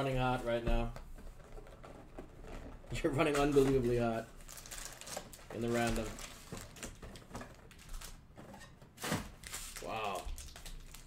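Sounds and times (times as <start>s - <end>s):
foil packs rustling: 2.5s - 8.2s, 9.0s - 11.0s.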